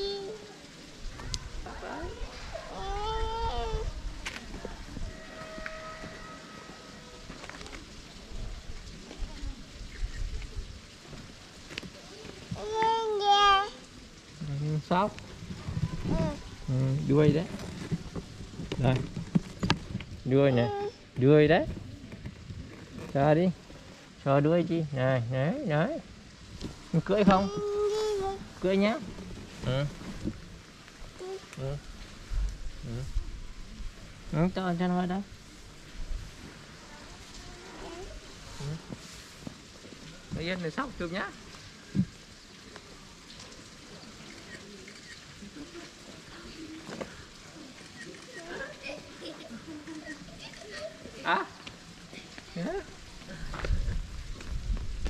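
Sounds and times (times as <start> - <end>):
faint outdoor background noise: 0.0 - 55.0.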